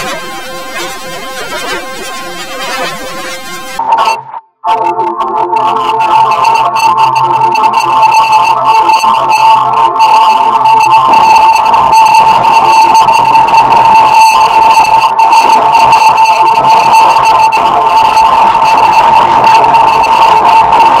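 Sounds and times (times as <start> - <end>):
harsh high-pitched electronic tone: 0.0 - 8.1.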